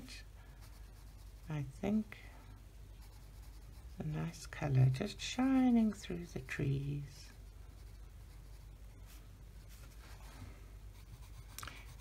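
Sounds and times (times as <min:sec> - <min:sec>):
colored pencil scratching on paper: 0:00.5 - 0:01.8, 0:02.9 - 0:06.6, 0:07.2 - 0:08.8, 0:09.6 - 0:12.0.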